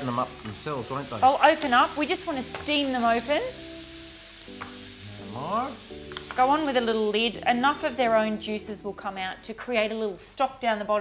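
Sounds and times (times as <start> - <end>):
mussels sizzling in a frying pan: 0.0 - 10.1.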